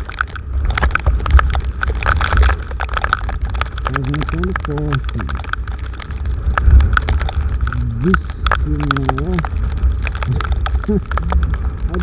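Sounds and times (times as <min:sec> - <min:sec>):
raindrops ticking on camera: 0:00.0 - 0:12.0
wind buffeting microphone: 0:00.0 - 0:12.0
man's voice: 0:03.9 - 0:05.4, 0:07.7 - 0:09.5, 0:10.3 - 0:12.0.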